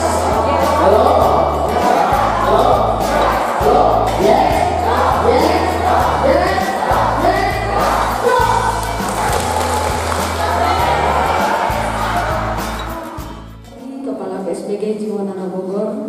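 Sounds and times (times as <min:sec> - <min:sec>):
group of voices singing: 0:00.0 - 0:13.7
music with steady bass line: 0:00.0 - 0:13.7.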